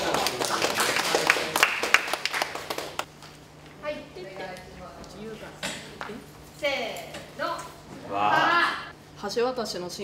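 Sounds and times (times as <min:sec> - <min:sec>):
group clapping hands: 0:00.0 - 0:03.1.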